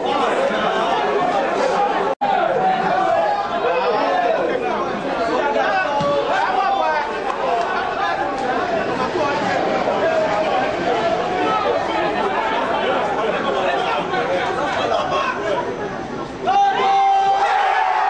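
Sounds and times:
babble of many voices: 0:00.0 - 0:18.0.

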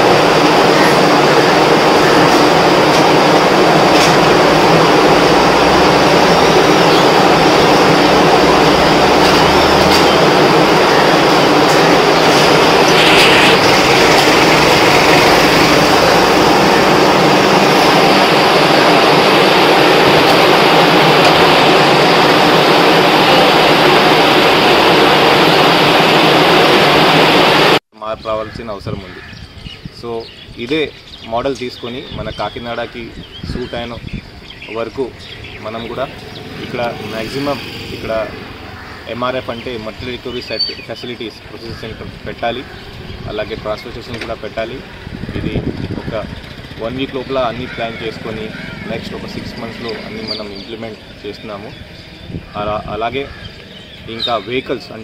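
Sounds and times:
machine motor and conveyor belt: 0:00.0 - 0:27.8.

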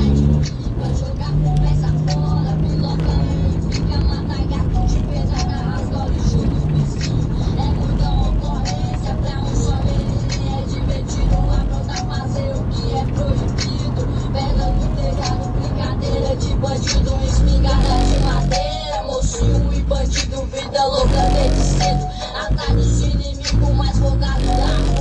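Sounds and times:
deep bass line: 0:00.0 - 0:12.0, 0:16.5 - 0:20.2, 0:21.0 - 0:25.0
rap song through car subwoofers: 0:00.0 - 0:25.0.

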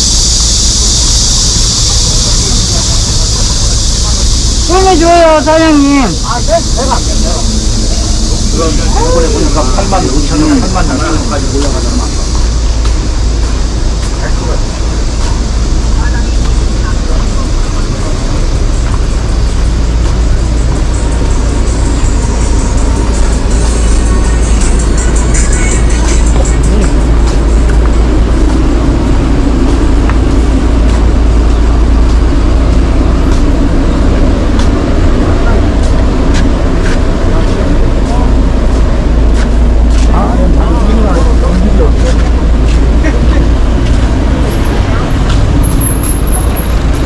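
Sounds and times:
heavy low rumble: 0:00.0 - 0:47.0
indistinct voices: 0:00.0 - 0:47.0
traffic: 0:00.0 - 0:47.0
music: 0:20.9 - 0:29.1.

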